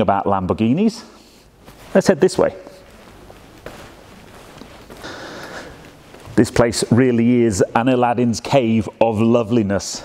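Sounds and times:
low room hiss: 0:00.0 - 0:10.0
footsteps on tiled floor: 0:01.6 - 0:06.9.

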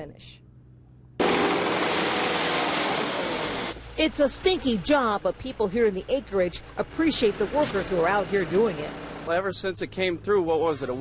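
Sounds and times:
track loader engine running: 0:01.2 - 0:11.0.

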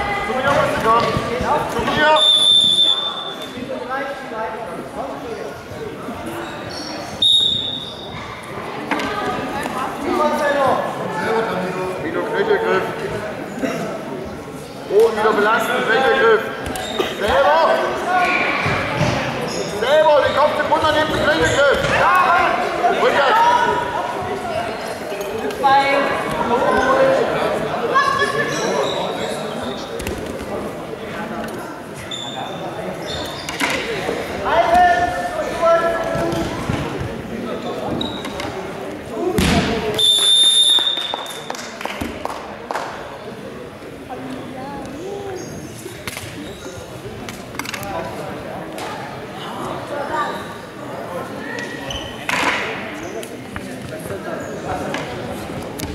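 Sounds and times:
voices calling out in hall: 0:00.0 - 0:55.9
referee whistle blasts: 0:02.1 - 0:03.4, 0:07.2 - 0:08.0, 0:39.9 - 0:41.4.

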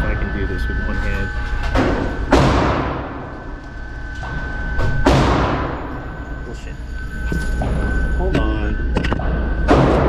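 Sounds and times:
pistol shots echoing: 0:01.8 - 0:03.2.

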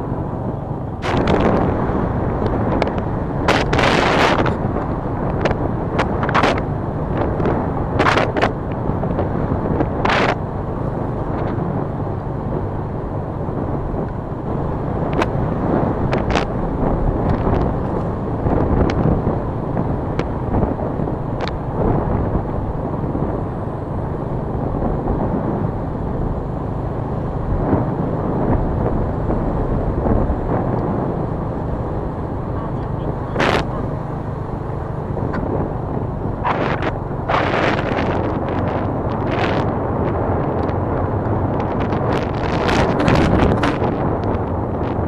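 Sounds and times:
vehicle engine and road noise: 0:00.0 - 0:45.0
wind buffeting microphone: 0:00.0 - 0:45.0.

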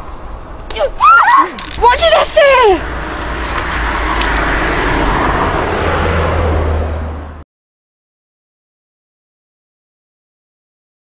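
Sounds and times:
car driving past: 0:02.7 - 0:07.4.

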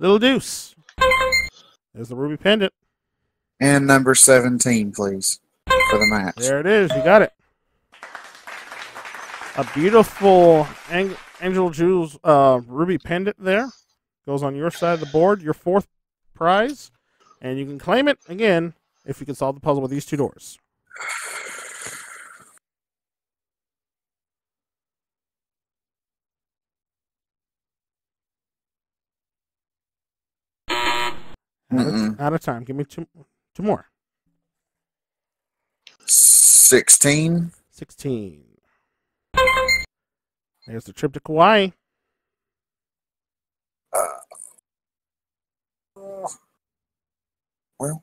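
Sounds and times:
person saying uh: 0:31.7 - 0:32.2, 0:36.1 - 0:37.5, 0:44.0 - 0:44.5, 0:47.8 - 0:48.0.

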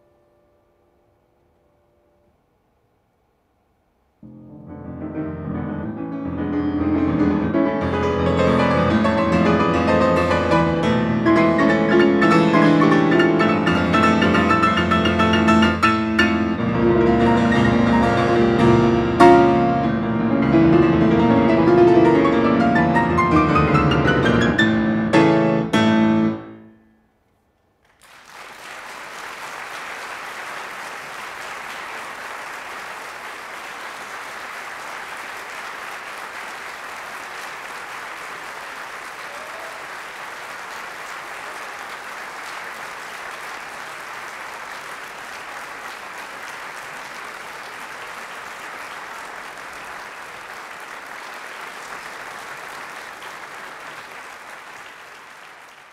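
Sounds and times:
audience applauding: 0:07.1 - 0:18.7, 0:27.8 - 0:55.9.

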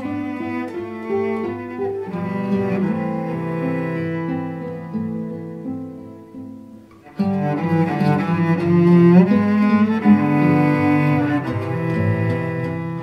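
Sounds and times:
bowed cello: 0:00.0 - 0:13.0
classical guitar: 0:00.0 - 0:13.0.

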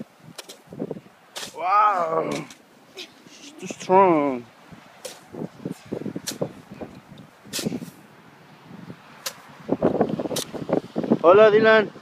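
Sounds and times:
shovels scraping snow: 0:01.3 - 0:03.9, 0:05.0 - 0:06.8, 0:07.4 - 0:08.0.

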